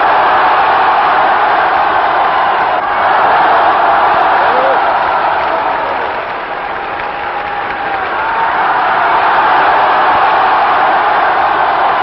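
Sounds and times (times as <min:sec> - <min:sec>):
scattered shouts: 0:00.0 - 0:06.4
crowd cheering: 0:00.0 - 0:12.0
crowd clapping: 0:00.0 - 0:12.0.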